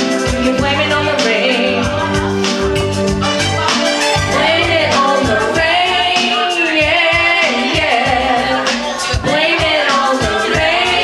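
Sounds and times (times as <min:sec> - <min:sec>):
woman singing karaoke: 0:00.0 - 0:02.4, 0:04.2 - 0:11.0
backing track with steady beat: 0:00.0 - 0:11.0.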